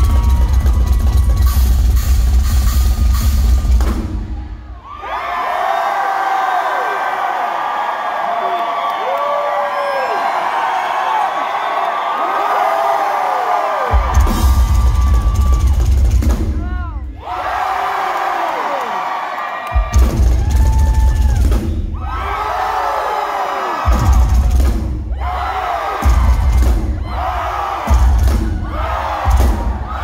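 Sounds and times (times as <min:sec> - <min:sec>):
crowd cheering and whooping: 0:00.0 - 0:02.1, 0:04.3 - 0:30.0
rock drum solo: 0:00.0 - 0:04.6, 0:13.9 - 0:17.1, 0:19.8 - 0:22.8, 0:23.8 - 0:30.0.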